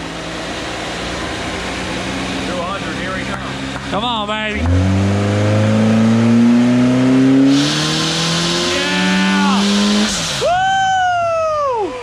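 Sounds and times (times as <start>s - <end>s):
car engine revving at full throttle: 0.0s - 11.0s
high whine winding down: 0.0s - 12.0s
loud rushing hiss: 7.4s - 10.9s.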